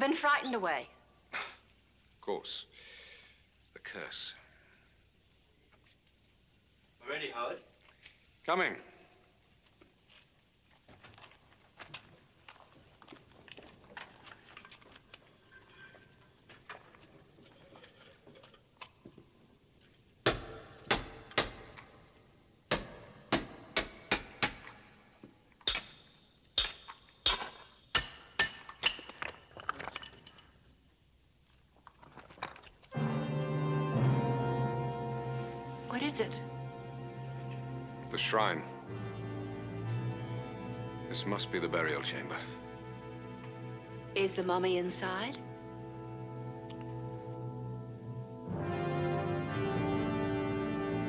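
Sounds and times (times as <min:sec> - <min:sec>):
hammer striking chisel: 0:20.2 - 0:22.0, 0:22.7 - 0:24.8, 0:25.6 - 0:29.4
music: 0:32.9 - 0:51.0.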